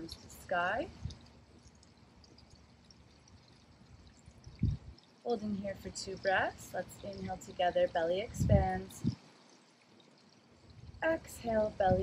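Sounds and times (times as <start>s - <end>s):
outdoor hiss: 0.0s - 12.0s.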